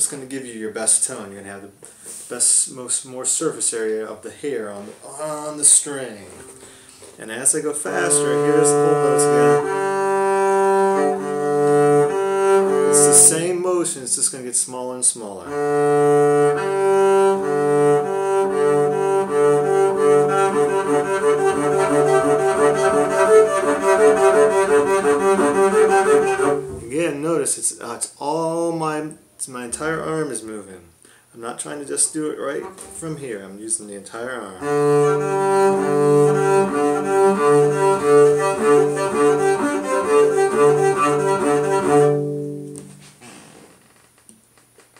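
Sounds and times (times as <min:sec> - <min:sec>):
bowed double bass: 0:04.3 - 0:13.7, 0:15.4 - 0:27.3, 0:34.6 - 0:43.3.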